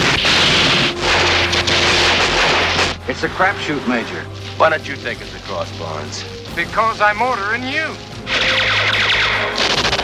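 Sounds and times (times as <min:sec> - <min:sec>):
loud explosion rush: 0:00.0 - 0:04.2.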